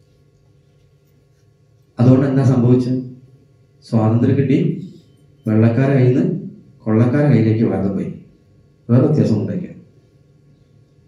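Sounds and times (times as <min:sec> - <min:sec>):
speaker system hum: 0:00.0 - 0:11.0.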